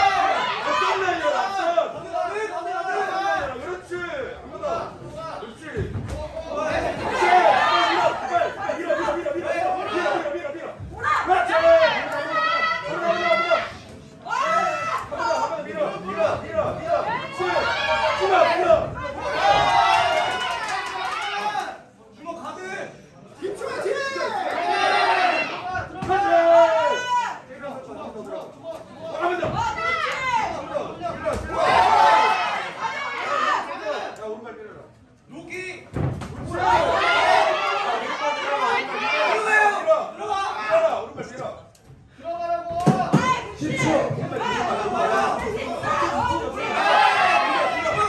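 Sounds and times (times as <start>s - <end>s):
spectators shouting: 0.0s - 4.2s, 6.4s - 21.8s, 23.9s - 27.4s, 29.2s - 34.1s, 36.5s - 41.1s, 42.4s - 48.0s.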